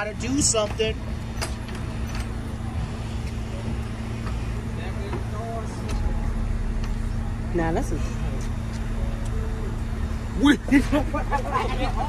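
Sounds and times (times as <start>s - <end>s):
train equipment humming: 0.0s - 12.0s.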